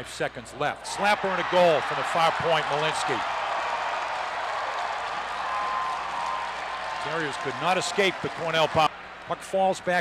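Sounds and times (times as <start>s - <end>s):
crowd cheering and applauding: 1.0s - 8.9s.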